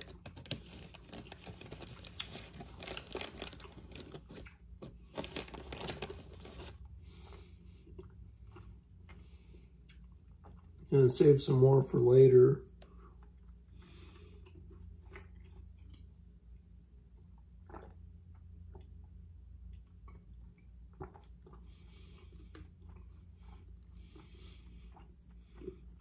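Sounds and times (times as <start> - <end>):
low steady hum: 0.0 - 26.0
swallowing sounds: 17.4 - 19.0, 20.0 - 26.0
soft breaths: 21.6 - 26.0.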